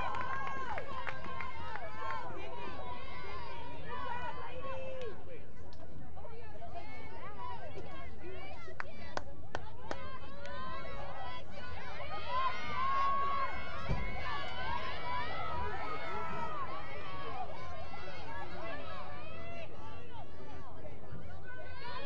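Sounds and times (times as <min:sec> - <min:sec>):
spectators chattering: 0:00.0 - 0:22.0.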